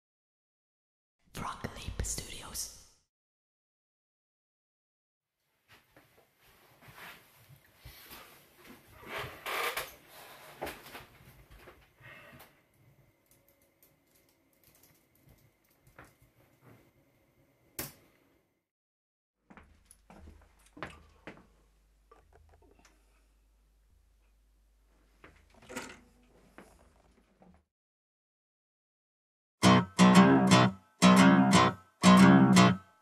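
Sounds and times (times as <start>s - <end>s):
person whispering: 1.3s - 3.0s.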